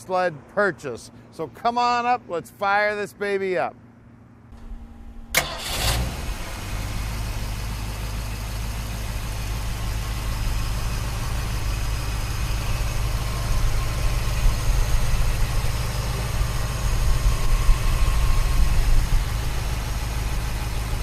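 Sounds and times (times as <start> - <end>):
car engine idling: 3.8 - 21.0
car engine starting: 4.5 - 21.0.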